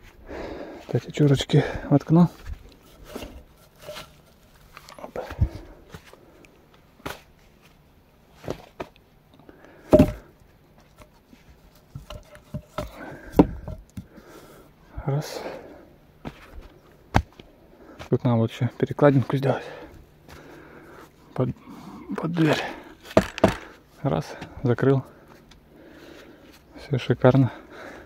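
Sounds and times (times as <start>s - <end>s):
wooden logs knocking: 9.9s - 10.3s, 11.9s - 14.1s, 23.1s - 23.8s.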